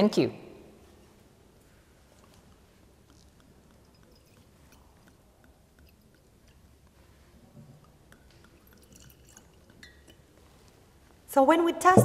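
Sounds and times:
glassware clicking: 3.4s - 6.7s.

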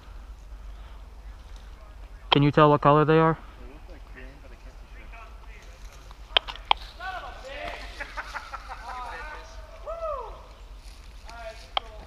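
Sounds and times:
distant voices calling out: 0.0s - 12.0s
sharp snaps: 6.1s - 6.8s.

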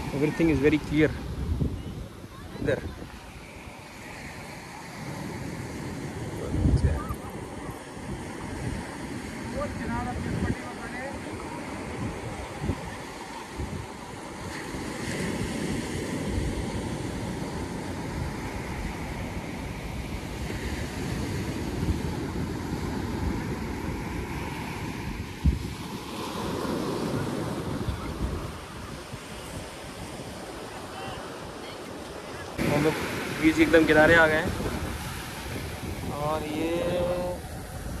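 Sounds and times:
sea waves washing onto beach: 0.0s - 38.0s
wind buffeting microphone: 0.0s - 38.0s.

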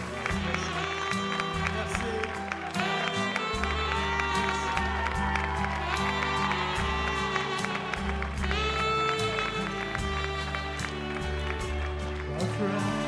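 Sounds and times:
live band playing: 0.0s - 13.0s.

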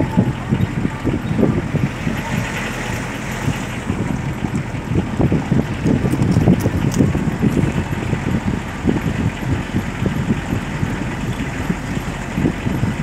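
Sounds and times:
car rumble from inside cabin: 0.0s - 13.0s.

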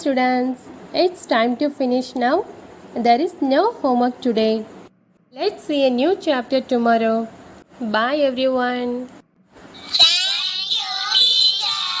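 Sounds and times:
child-like voice speaking sing-song: 9.8s - 12.0s.

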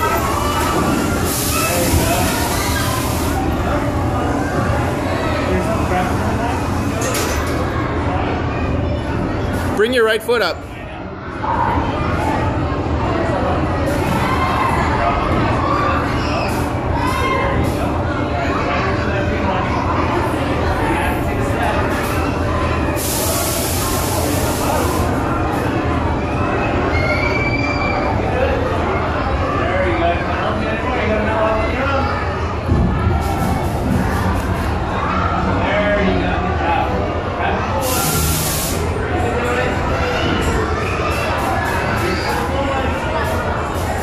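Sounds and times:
hiss: 23.0s - 25.1s, 37.8s - 38.9s.

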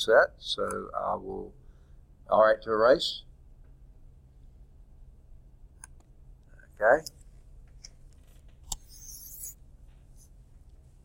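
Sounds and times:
steady low hum: 0.0s - 11.0s
stylus tapping tablet screen: 5.8s - 10.3s
stylus scratching on screen: 6.5s - 10.4s.

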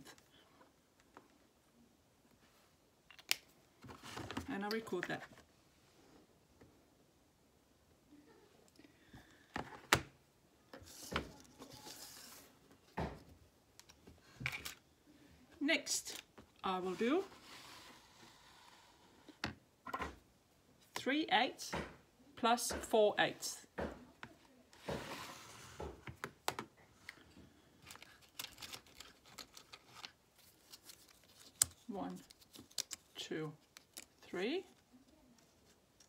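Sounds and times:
whiteboard sliding on wooden table: 16.9s - 19.0s, 24.8s - 26.0s.

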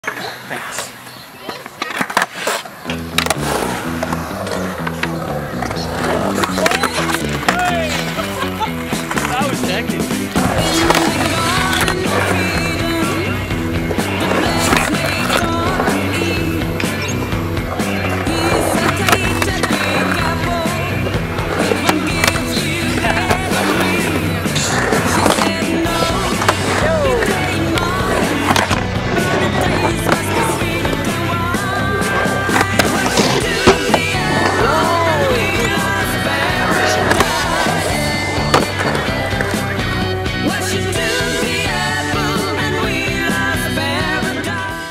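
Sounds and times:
skateboard wheels rolling: 0.0s - 44.9s
skateboard clacking on landing: 0.1s - 44.6s
music playing: 2.8s - 44.9s.

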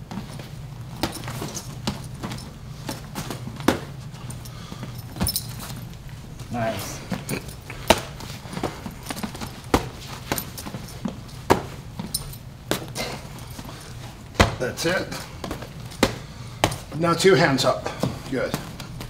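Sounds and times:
boxing gloves smacking: 0.0s - 4.1s, 7.1s - 17.0s
steady low hum: 0.0s - 19.0s.

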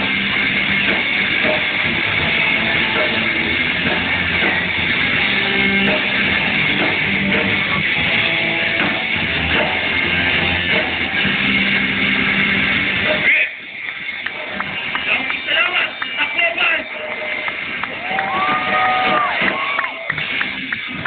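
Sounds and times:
crowd voices: 0.0s - 21.0s
live rock band playing: 0.0s - 21.0s.

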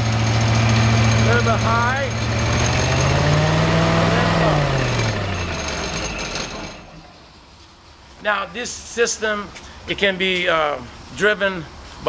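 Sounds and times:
engine revving and winding down: 0.0s - 7.1s.

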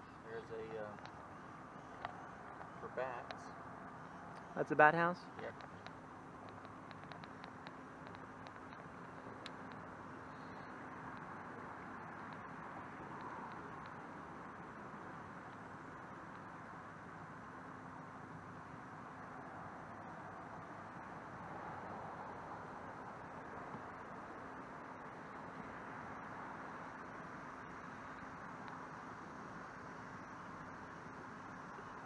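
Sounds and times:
faint ticks: 0.0s - 4.5s, 5.4s - 16.7s, 23.6s - 32.0s.

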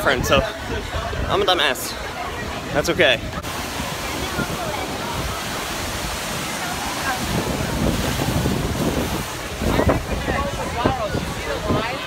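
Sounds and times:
crowd voices: 0.0s - 12.0s
wind buffeting microphone: 0.0s - 12.0s
water running through trough: 3.4s - 12.0s.

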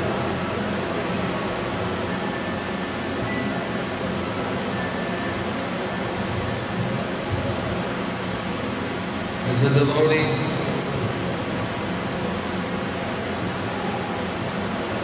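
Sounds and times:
faint music with held notes: 0.0s - 7.9s
background hiss and hum: 0.0s - 15.0s.

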